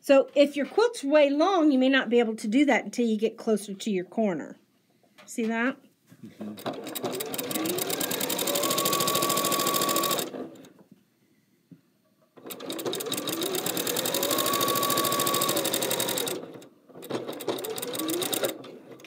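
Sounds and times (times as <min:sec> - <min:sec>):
electric sewing machine stitching: 0:06.6 - 0:10.7, 0:12.4 - 0:19.0.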